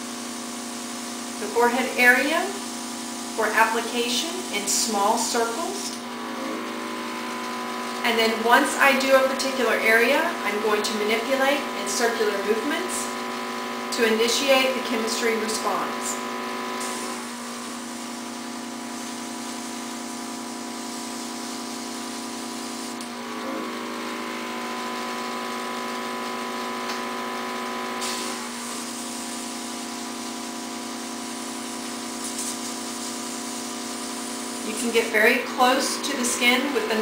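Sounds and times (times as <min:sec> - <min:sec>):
airbrush motor hum: 0:00.0 - 0:37.0
airy spray hiss: 0:16.8 - 0:23.0, 0:28.0 - 0:36.9.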